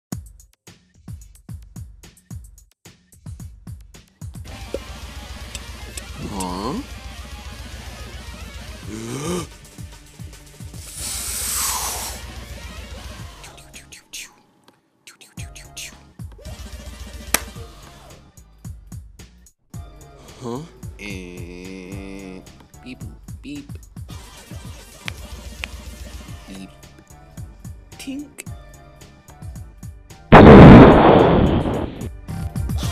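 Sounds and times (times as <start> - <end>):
music with low beat: 0.1 - 8.0
loud hissing whoosh: 10.8 - 12.2, 30.4 - 32.1
grenade explosion: 30.3 - 32.1.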